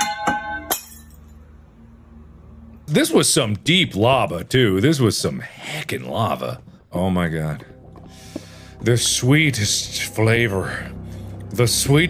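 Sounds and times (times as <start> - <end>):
glass object hitting ground: 0.0 - 1.4.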